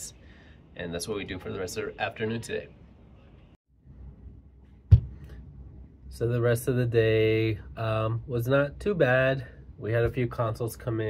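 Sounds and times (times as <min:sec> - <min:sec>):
short sharp thump: 0:04.9 - 0:05.3.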